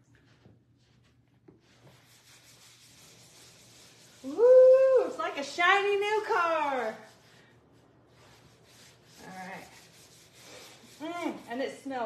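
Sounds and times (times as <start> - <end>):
foam pad rubbing on leather: 1.8 - 4.4, 8.2 - 11.7
woman saying ooh: 4.3 - 5.3.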